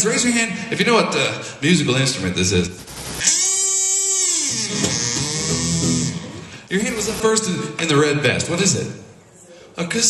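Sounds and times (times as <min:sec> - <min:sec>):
kazoo buzzing: 0:02.8 - 0:07.2.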